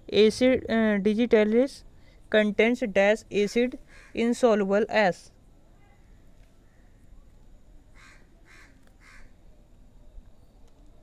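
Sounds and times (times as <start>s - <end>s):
short harsh bird calls: 3.9s - 4.2s.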